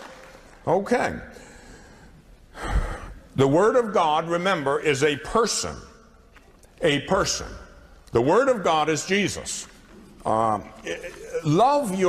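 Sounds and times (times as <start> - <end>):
sharp intake of breath: 1.3 - 3.3
man's voice: 3.4 - 5.9, 6.8 - 12.0.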